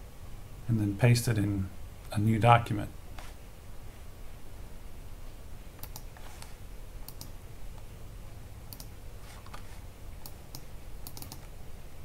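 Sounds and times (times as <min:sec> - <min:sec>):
steady low hum: 0:00.0 - 0:12.0
mouse and keyboard clicks: 0:05.8 - 0:07.4, 0:08.7 - 0:11.5.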